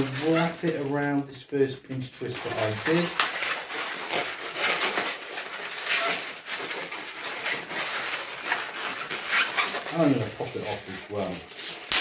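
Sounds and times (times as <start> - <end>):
balloon rubber scraping: 0.0 - 0.9, 1.9 - 12.0.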